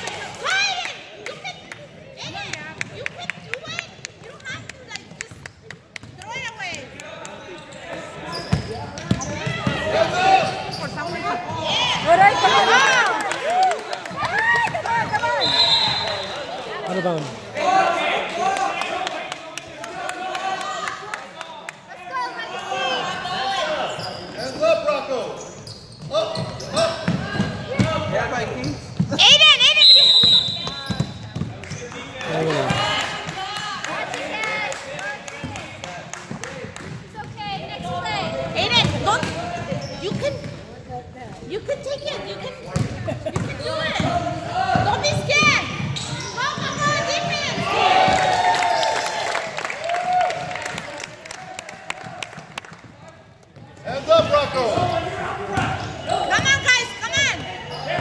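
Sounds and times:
basketballs bouncing on hardwood: 0:30.6 - 0:31.6.

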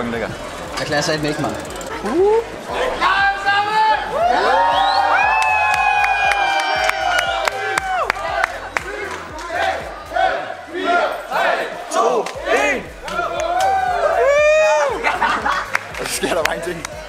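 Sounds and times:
crowd cheering and shouting: 0:00.3 - 0:17.0.

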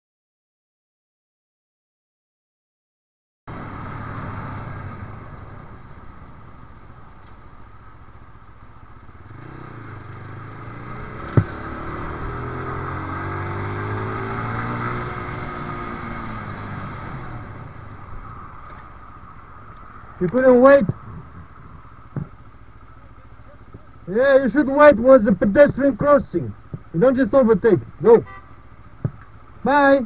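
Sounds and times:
motorcycle engine: 0:03.5 - 0:29.7.

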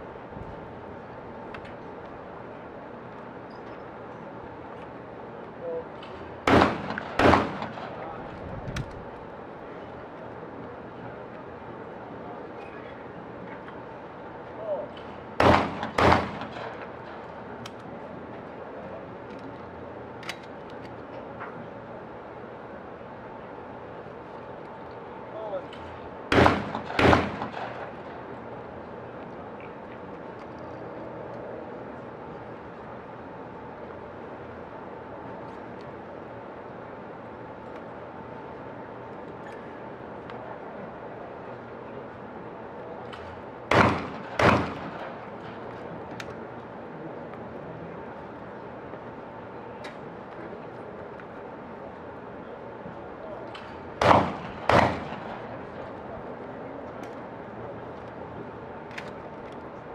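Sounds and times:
shotgun shots: 0:06.5 - 0:08.0, 0:15.4 - 0:16.8, 0:26.3 - 0:28.0, 0:43.7 - 0:45.2, 0:54.0 - 0:55.5.

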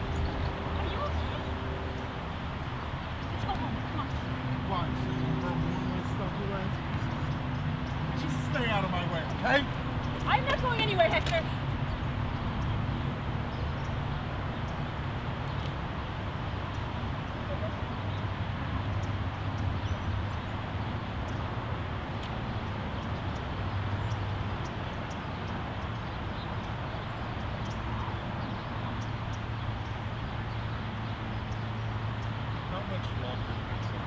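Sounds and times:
distant road traffic hum: 0:00.0 - 0:34.0.

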